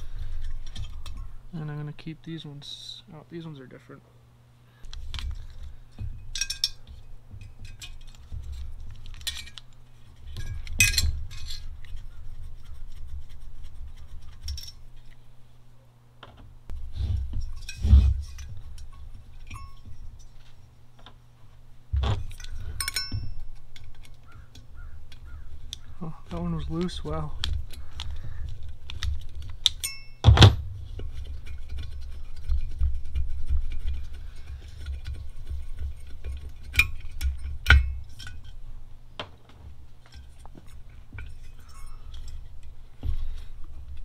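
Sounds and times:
metal screws clinking: 5.4 - 11.9, 17.4 - 20.5, 22.2 - 25.8, 29.6 - 30.3, 40.1 - 42.8.

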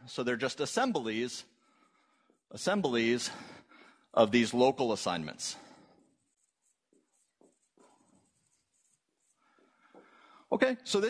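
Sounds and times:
marker writing on whiteboard: 5.8 - 10.2.

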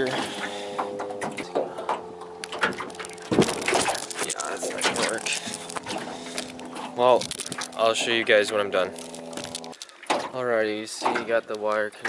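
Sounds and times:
steady low hum: 0.0 - 9.8
knocks and clicks in metal canoe: 0.0 - 12.0.

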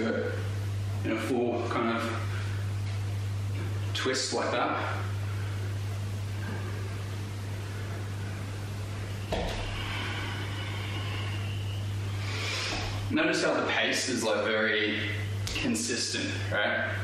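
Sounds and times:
low electrical hum: 0.0 - 17.0
low rumble and bright hiss: 0.0 - 17.0.

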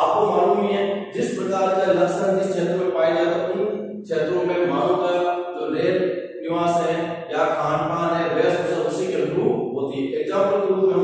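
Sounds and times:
man chanting speech: 0.0 - 11.0.

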